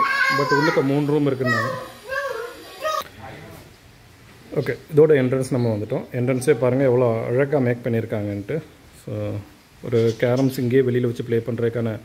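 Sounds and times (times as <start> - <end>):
young child crying out: 0.0 - 3.1.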